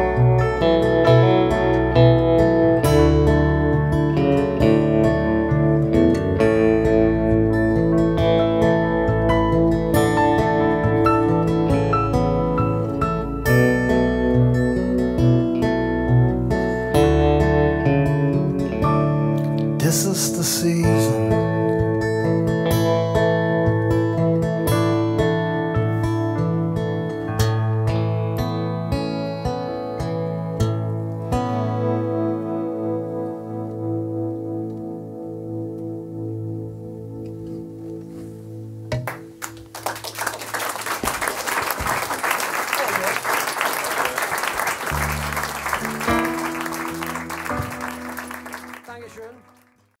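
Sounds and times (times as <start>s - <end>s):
keyboard: 0.0s - 39.8s, 44.2s - 50.0s
acoustic guitar: 0.0s - 40.1s, 41.0s - 50.0s
electric guitar: 0.0s - 50.0s
audience applause: 39.0s - 50.0s.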